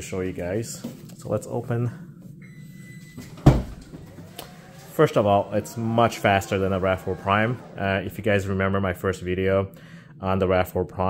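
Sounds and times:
faint motor whine: 0.3 - 10.6.

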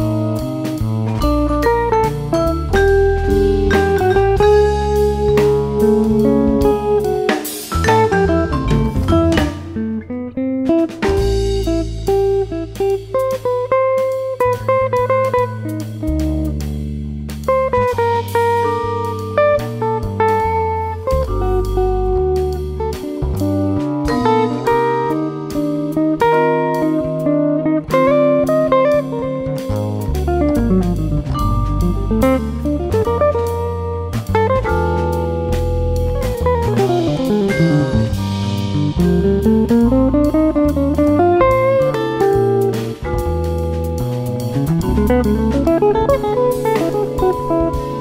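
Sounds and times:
bass line: 0.0 - 48.0
drum kit with cymbals: 0.0 - 48.0
electric guitar melody: 0.0 - 48.0.

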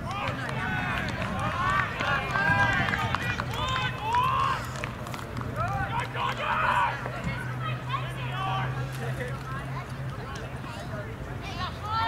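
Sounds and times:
voices shouting and calling: 0.0 - 4.8, 5.6 - 12.0.

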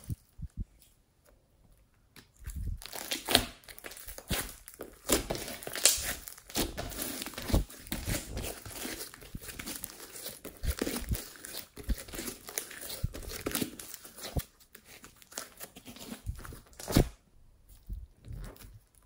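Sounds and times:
slime squeezed crackling and popping: 2.4 - 14.4.

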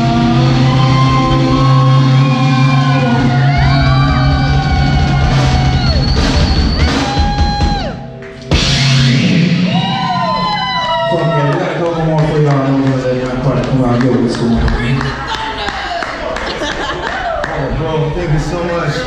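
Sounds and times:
live rock band playing: 0.0 - 11.3.

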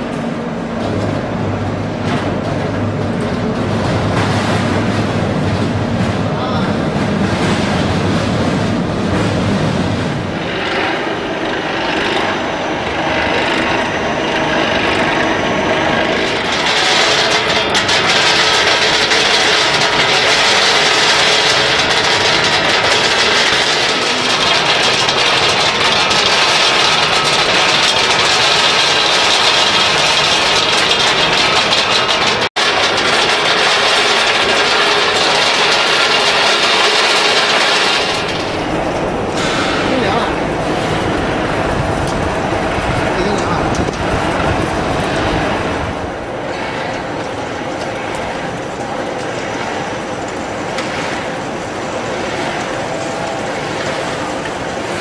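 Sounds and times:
machinery noise: 0.0 - 55.0
beans moving over mesh conveyors: 6.2 - 55.0.

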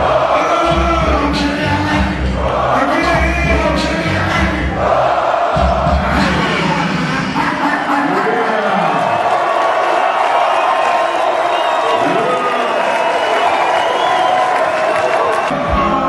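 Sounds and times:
hip-hop beat with heavy bass: 0.0 - 7.9
crowd singing and shouting: 0.0 - 8.4, 15.4 - 16.0.

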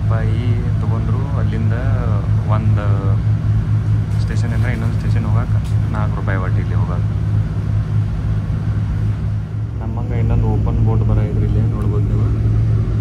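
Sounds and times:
boat engine humming: 0.0 - 13.0.

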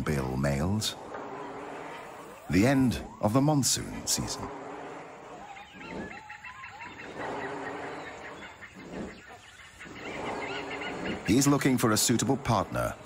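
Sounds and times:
birds calling in forest: 0.0 - 13.0
whistled bird notes: 0.7 - 13.0.

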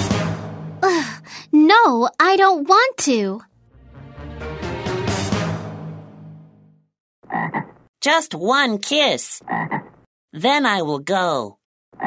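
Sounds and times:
cartoon frog croaks: 7.3 - 7.9, 9.4 - 10.1.

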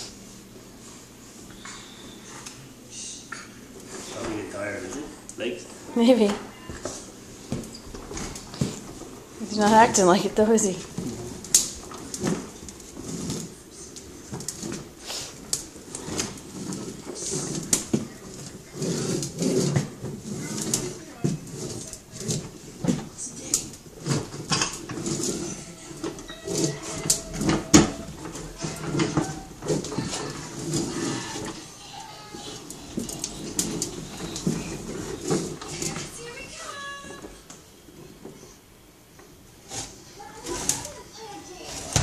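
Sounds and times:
plastic toy rolling on tile: 9.5 - 37.4.

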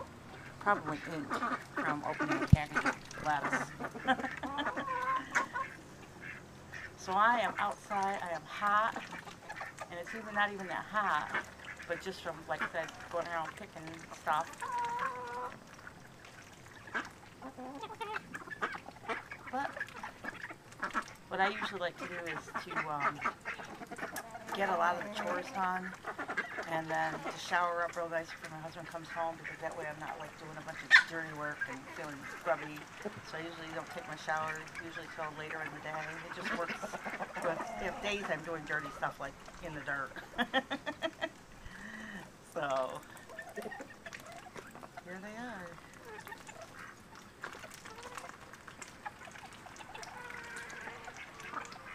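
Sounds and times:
chickens clucking: 0.0 - 51.9
ducks quacking: 0.0 - 51.9.

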